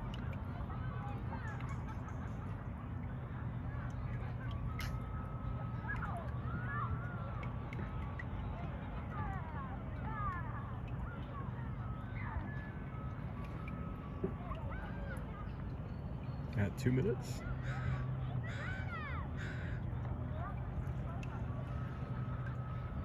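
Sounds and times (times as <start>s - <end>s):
distant indistinct voices: 0.0s - 23.0s
steady low hum: 0.0s - 23.0s.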